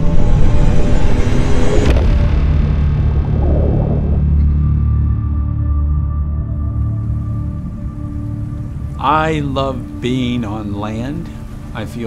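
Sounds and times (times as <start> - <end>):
steady rushing noise: 0.0 - 5.1
low musical drone: 0.0 - 12.0.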